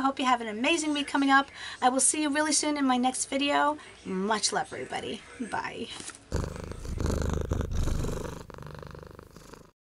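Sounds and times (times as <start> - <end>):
cat purring: 6.3 - 9.8.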